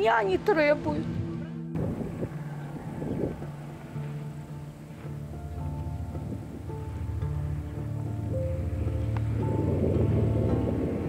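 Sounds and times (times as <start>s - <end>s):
diesel truck engine drone: 1.5s - 11.0s.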